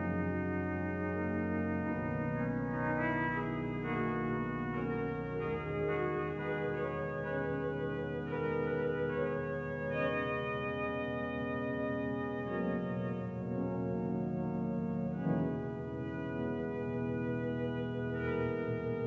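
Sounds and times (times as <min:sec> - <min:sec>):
organ playing sustained chords: 0:00.0 - 0:19.0.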